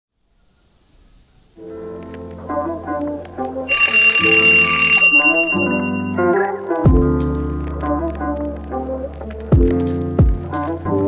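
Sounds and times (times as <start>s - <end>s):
twin-bell alarm clock ringing: 3.7s - 6.2s.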